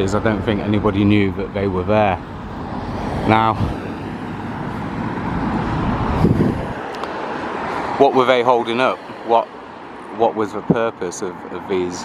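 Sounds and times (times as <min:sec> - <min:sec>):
cars passing: 0:00.0 - 0:12.0.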